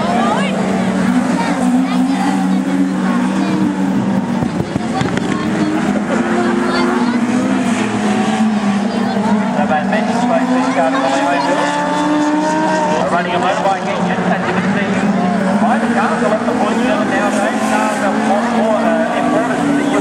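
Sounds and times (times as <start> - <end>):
racing car engines at speed: 0.0 - 20.0
steady engine drone: 0.0 - 20.0.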